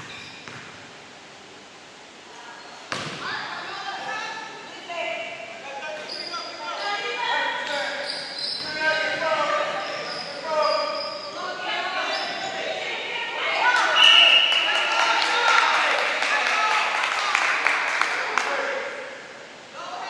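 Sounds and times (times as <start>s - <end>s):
sneakers squeaking: 0.0s - 0.8s, 2.5s - 3.4s, 5.7s - 12.8s
people calling out: 8.7s - 17.2s.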